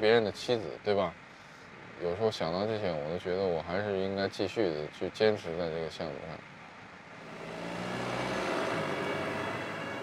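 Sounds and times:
motor vehicle passing: 7.1s - 10.0s.

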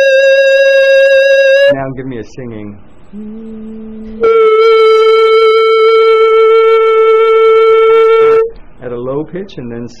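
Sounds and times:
person holding a high note: 0.0s - 1.8s, 3.1s - 8.5s.

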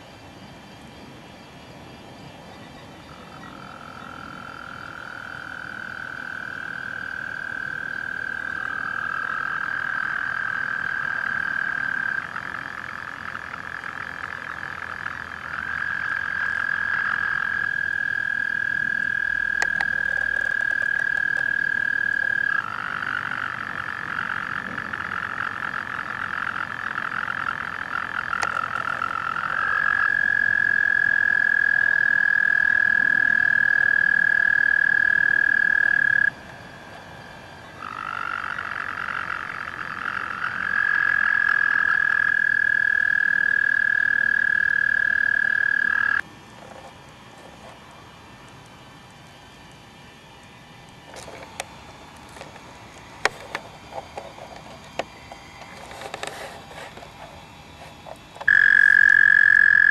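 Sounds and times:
toads trilling: 3.0s - 36.4s, 37.6s - 46.2s, 58.0s - 59.9s.

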